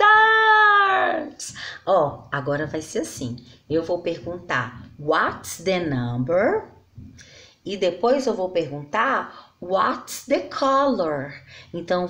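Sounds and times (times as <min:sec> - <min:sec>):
woman breathing: 0:01.4 - 0:01.9, 0:07.1 - 0:07.7, 0:11.4 - 0:11.8.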